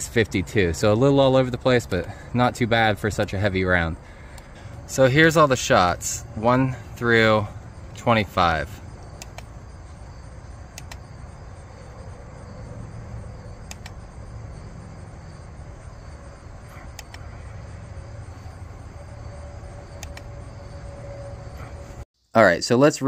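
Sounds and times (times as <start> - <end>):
faint steady tone: 0.0 - 22.0
outdoor background noise: 0.0 - 23.0.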